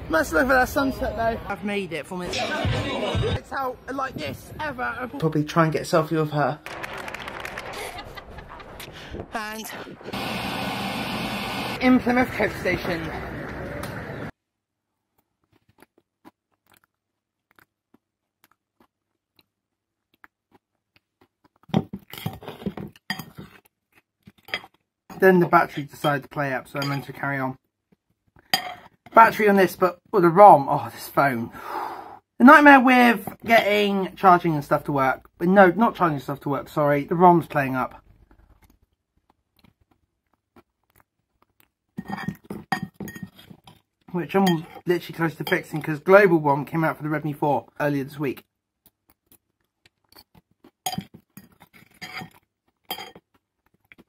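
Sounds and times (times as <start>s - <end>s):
person chewing food: 14.9s - 25.2s, 27.6s - 29.0s, 38.0s - 44.1s, 48.4s - 54.0s
cutlery clinking on a plate: 23.1s - 23.6s, 26.8s - 27.1s, 28.6s - 29.0s, 42.0s - 43.5s, 50.9s - 53.2s.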